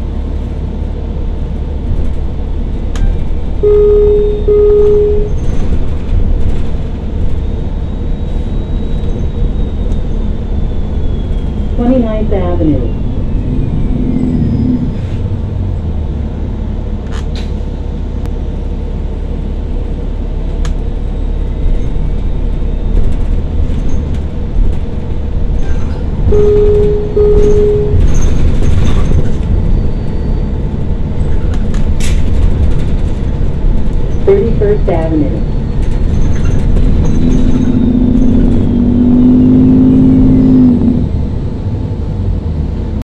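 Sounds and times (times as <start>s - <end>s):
bus drivetrain and road rumble: 0.0s - 43.0s
short beeps: 3.6s - 5.6s, 26.3s - 28.3s.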